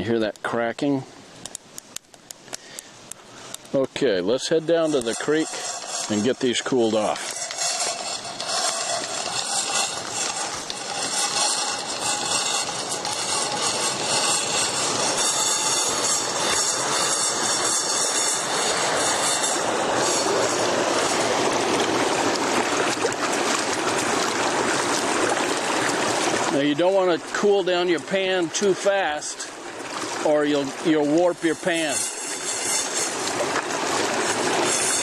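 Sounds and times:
creek rushing over rocks: 0.0s - 35.0s.

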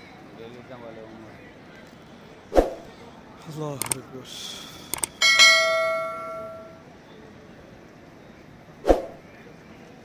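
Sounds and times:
short click: 3.8s - 4.0s, 4.9s - 5.2s
bright bell ding: 5.2s - 6.8s.

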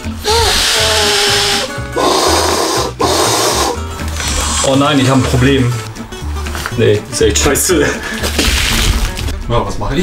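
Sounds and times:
background music: 0.0s - 10.0s
person blowing into air valve: 0.1s - 4.8s.

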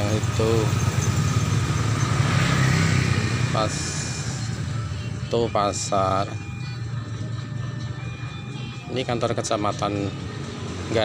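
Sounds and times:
road traffic: 0.0s - 11.0s
vehicle passing nearby: 0.0s - 11.0s.

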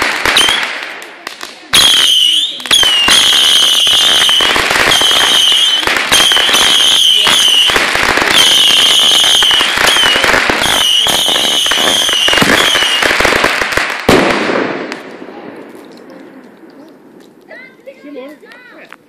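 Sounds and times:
fireworks crackling: 0.0s - 19.0s
firework whistles: 0.2s - 0.7s, 1.8s - 13.9s
loud firework bang: 13.4s - 15.6s.

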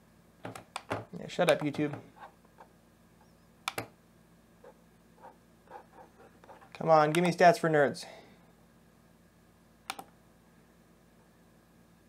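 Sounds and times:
computer mouse clicks: 3.7s - 3.9s, 9.9s - 10.1s.

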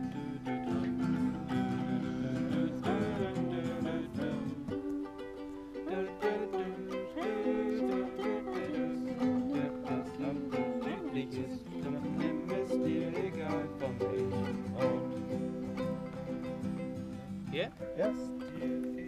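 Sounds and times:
ukuleles strumming chords: 0.0s - 19.0s.

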